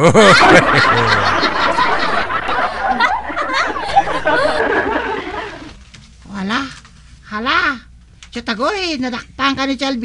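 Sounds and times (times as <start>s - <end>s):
crowd laughter: 0.0s - 5.8s
person laughing: 0.0s - 5.8s.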